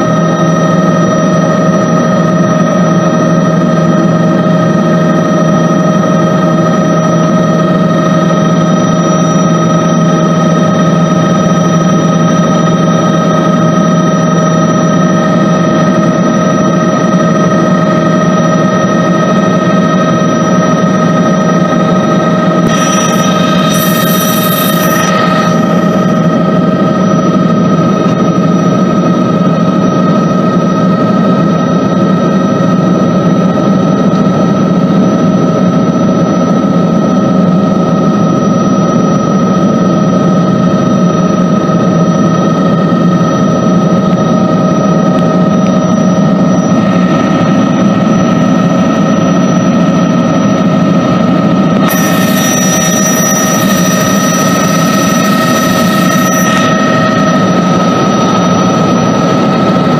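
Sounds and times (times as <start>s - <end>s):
helicopter cabin engine whine: 0.0s - 59.9s.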